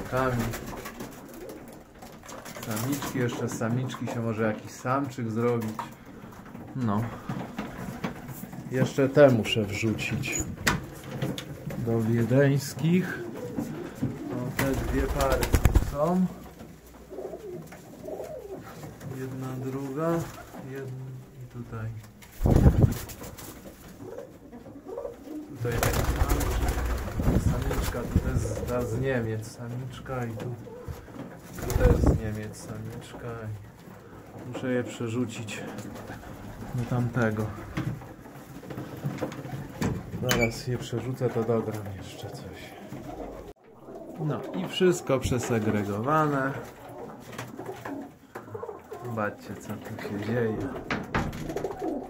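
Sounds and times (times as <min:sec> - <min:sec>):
pigeons cooing: 0:12.8 - 0:19.2, 0:23.8 - 0:27.6, 0:30.2 - 0:32.0, 0:42.0 - 0:45.7, 0:46.4 - 0:49.4, 0:50.2 - 0:52.0.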